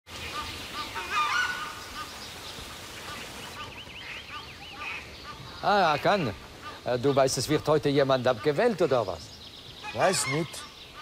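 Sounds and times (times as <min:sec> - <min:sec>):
birds chirping: 0:00.1 - 0:11.0.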